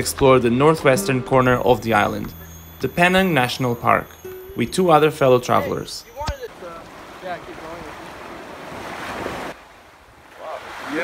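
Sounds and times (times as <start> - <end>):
person speaking: 0.1 - 6.6
waves washing up beach: 5.7 - 11.0.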